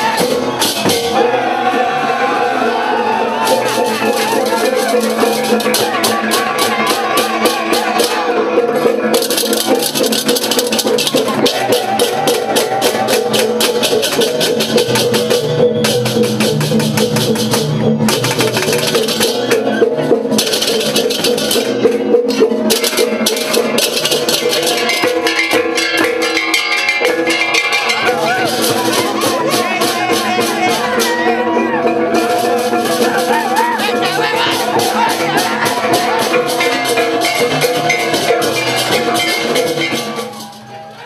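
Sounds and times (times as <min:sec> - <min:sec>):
drums: 0:00.0 - 0:41.0
hand cymbals clashing: 0:20.3 - 0:40.9
gong tones ringing: 0:34.6 - 0:40.9.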